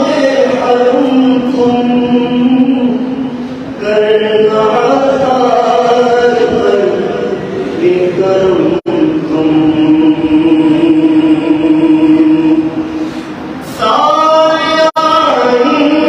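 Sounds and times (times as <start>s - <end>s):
man chanting into microphone: 0.0s - 13.0s, 13.6s - 16.0s.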